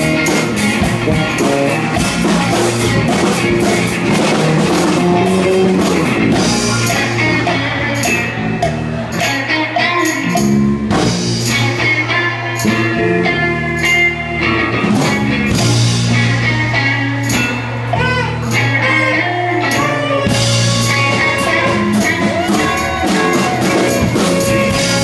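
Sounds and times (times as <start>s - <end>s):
drum kit hits: 0.0s - 7.3s
bass line: 0.0s - 25.0s
funk band playing: 0.0s - 25.0s
guitar: 0.0s - 25.0s.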